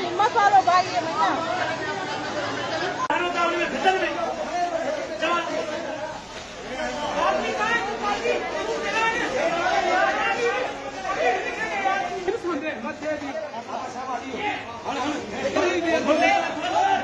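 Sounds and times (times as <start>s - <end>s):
babble of overlapping voices: 0.0s - 17.0s.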